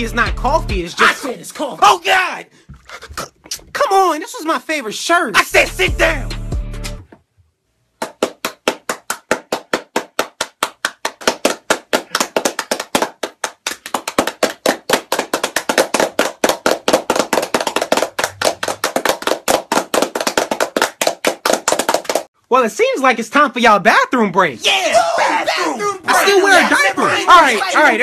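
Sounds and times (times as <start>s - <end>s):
hands clapping: 8.0s - 22.3s.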